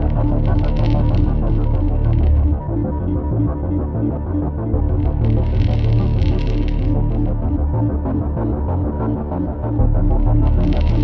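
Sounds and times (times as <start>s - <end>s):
low throbbing bass: 0.0s - 11.0s.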